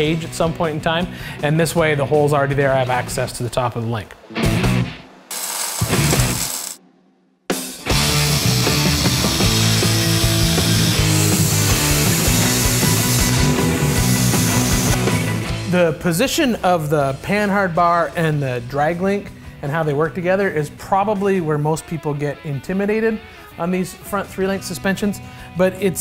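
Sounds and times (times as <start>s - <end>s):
background music: 0.0s - 6.8s, 7.5s - 26.0s
power tool grinding steel: 5.3s - 6.8s, 7.9s - 15.4s.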